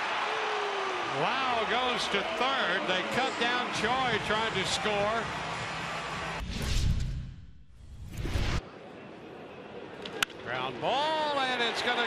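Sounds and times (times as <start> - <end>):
ballpark crowd noise: 0.0 - 6.4, 8.6 - 12.0.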